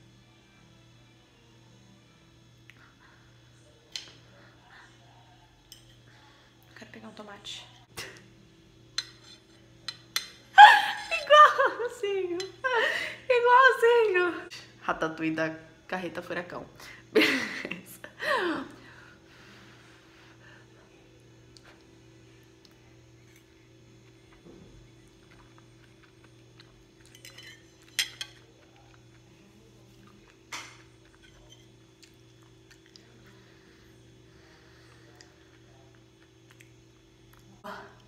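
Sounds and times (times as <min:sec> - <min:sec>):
steady low hum: 0:00.0 - 0:38.0
person laughing: 0:10.6 - 0:13.3, 0:17.2 - 0:18.8
fork clinking on ceramic plate: 0:27.0 - 0:28.4.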